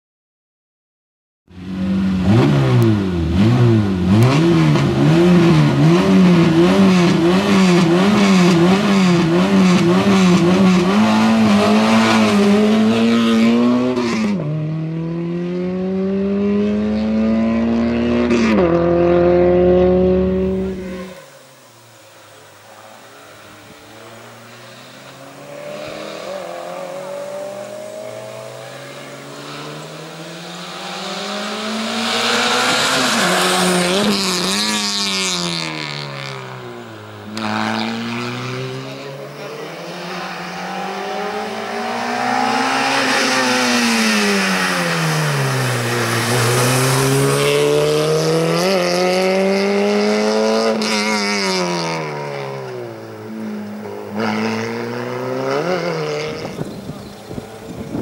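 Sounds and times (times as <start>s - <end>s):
race car engine revving: 1.6s - 21.4s, 22.4s - 58.0s.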